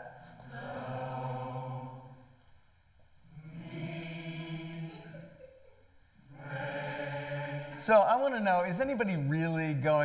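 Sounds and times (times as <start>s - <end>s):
group singing held note: 0.0s - 2.4s, 3.3s - 5.5s, 6.3s - 7.8s.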